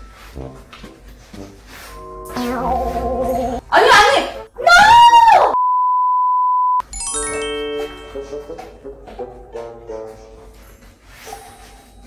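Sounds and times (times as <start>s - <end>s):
censor bleep tone: 5.6s - 6.8s.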